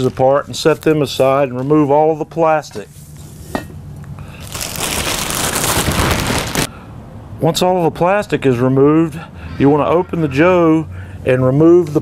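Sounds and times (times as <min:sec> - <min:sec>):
plastic wrap crinkling: 0:04.4 - 0:06.7.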